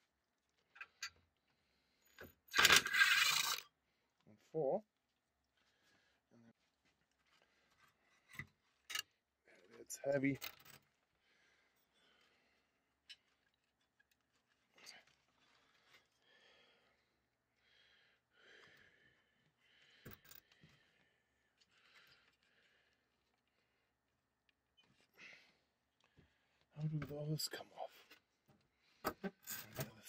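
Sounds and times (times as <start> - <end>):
faint breathing: 11.2 - 12.8, 14.8 - 23.9, 25.0 - 26.7.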